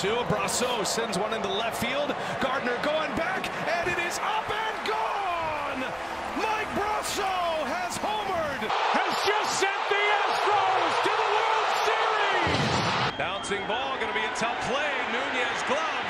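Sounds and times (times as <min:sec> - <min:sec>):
stadium crowd roaring and cheering: 0:00.0 - 0:16.0
excited voices shouting: 0:00.3 - 0:12.5.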